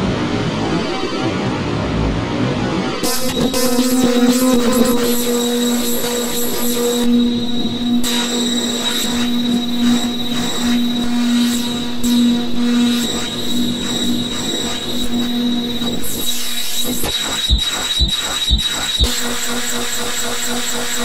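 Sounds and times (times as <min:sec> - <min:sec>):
high whine: 0:03.0 - 0:21.0.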